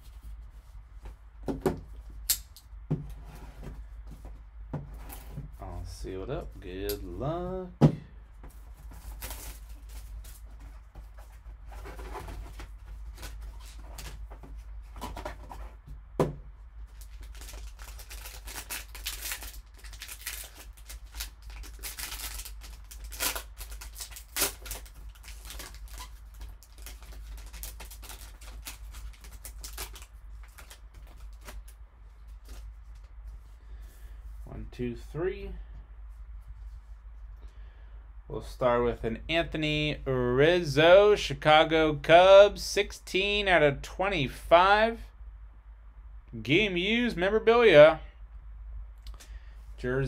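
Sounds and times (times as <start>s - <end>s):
plastic wrapping tearing and crinkling: 9.0s - 10.5s, 16.9s - 31.8s.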